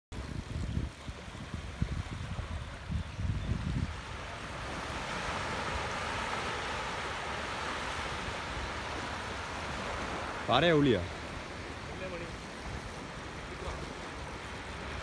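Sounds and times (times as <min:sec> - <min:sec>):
wind buffeting microphone: 0:00.1 - 0:15.0
surf washing onto beach: 0:00.2 - 0:15.0.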